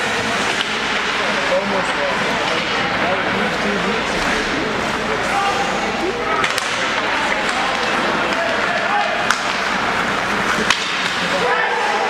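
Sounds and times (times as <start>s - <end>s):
crowd chatter: 0.0s - 12.0s
sticks and puck clacking: 0.0s - 12.0s.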